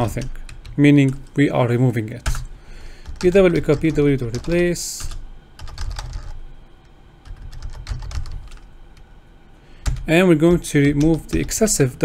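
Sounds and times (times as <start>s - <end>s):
typing on computer keyboard: 0.0s - 1.3s, 2.2s - 6.4s, 7.2s - 8.7s, 9.8s - 11.6s.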